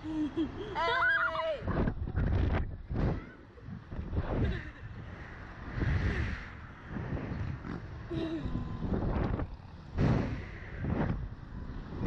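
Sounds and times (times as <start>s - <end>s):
wind buffeting microphone: 1.6s - 12.0s.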